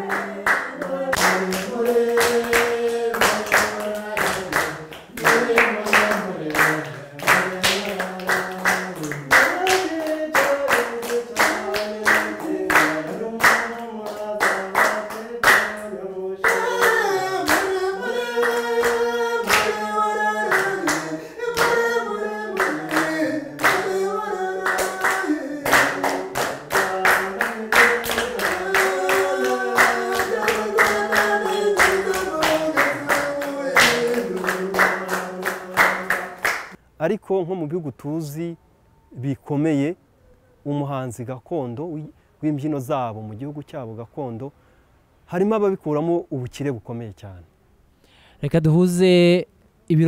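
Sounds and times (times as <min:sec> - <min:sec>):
hands clapping a steady beat: 0:00.0 - 0:36.8.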